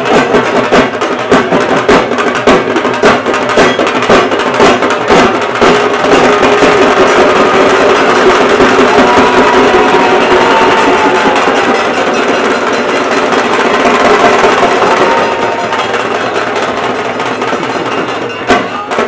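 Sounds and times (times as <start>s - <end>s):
crowd of voices: 0.0s - 19.0s
drumming: 0.0s - 19.0s.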